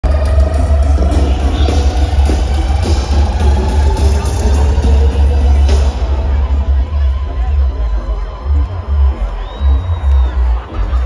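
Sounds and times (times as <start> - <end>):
booming bass: 0.0 - 11.0
live concert music over pa: 0.0 - 11.0.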